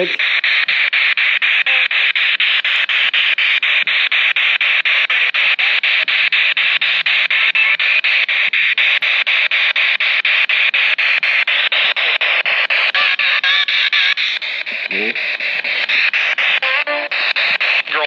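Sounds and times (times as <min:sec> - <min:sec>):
radio static in short bursts: 0:00.0 - 0:18.0
snatches of radio broadcast: 0:00.0 - 0:18.0.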